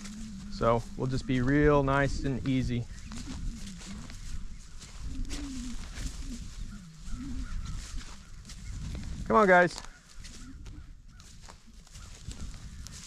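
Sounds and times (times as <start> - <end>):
bison grunting: 0.0 - 8.4.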